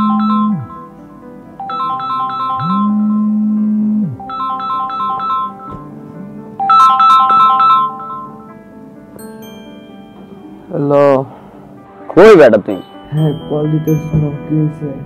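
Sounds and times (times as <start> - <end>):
mobile phone ringtone: 0.0 - 1.0, 1.6 - 3.6, 4.2 - 5.8, 6.6 - 8.5
low buzz: 2.6 - 4.2.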